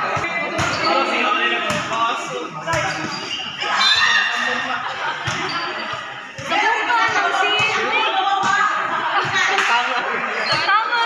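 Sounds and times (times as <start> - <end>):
volleyball hit and bouncing on concrete: 0.0 - 0.9, 5.2 - 9.9
people shouting and chattering: 0.0 - 11.0.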